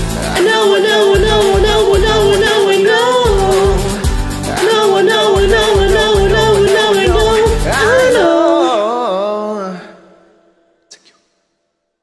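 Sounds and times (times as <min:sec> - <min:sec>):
pulsing bass: 0:00.0 - 0:00.4, 0:01.2 - 0:02.5, 0:03.2 - 0:08.2
pop karaoke backing track: 0:00.0 - 0:09.9
woman singing wordless vocal: 0:00.2 - 0:10.3.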